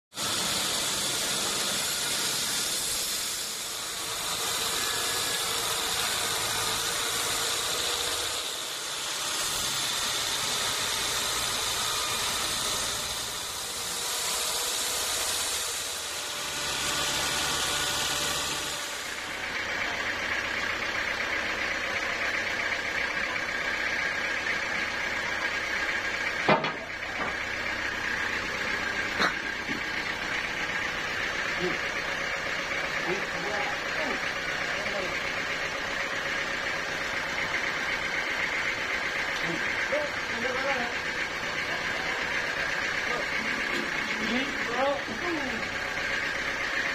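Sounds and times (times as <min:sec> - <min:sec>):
band saw hissing: 0:00.1 - 0:46.9
machine drone with whine: 0:00.2 - 0:46.9.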